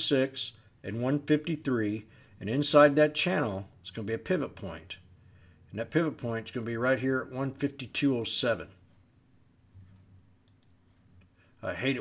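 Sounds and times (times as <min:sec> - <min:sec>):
computer mouse clicks: 0:10.4 - 0:10.9.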